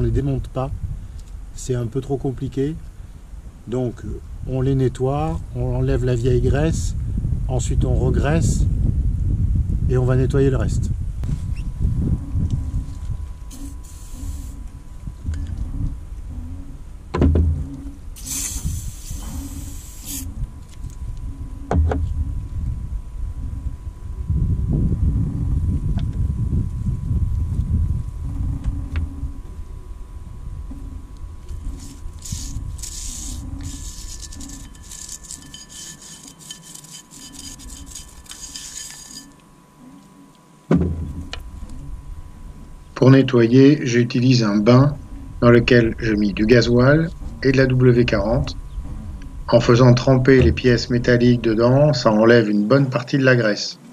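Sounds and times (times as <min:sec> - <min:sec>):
gloved hands rubbing and rustling: 0:12.8 - 0:14.7, 0:31.5 - 0:39.4
aerosol spray hiss: 0:13.5 - 0:14.6, 0:18.2 - 0:20.3.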